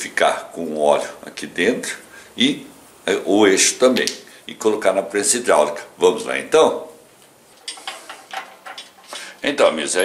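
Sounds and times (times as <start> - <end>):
metal parts clinking: 7.6 - 9.2.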